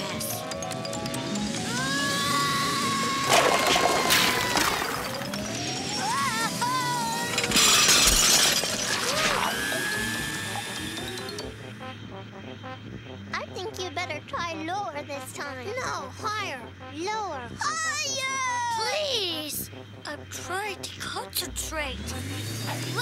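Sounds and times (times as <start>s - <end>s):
cartoon background music: 0.0s - 23.0s
comedy sound effects: 1.2s - 11.9s
crashes with shattering: 3.0s - 11.4s.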